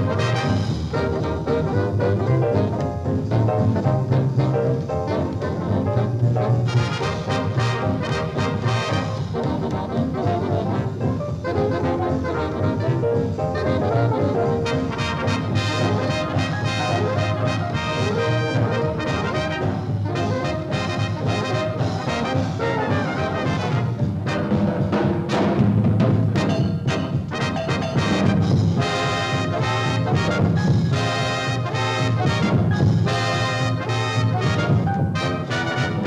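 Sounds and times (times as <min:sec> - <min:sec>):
swing big band playing: 0:00.0 - 0:36.0.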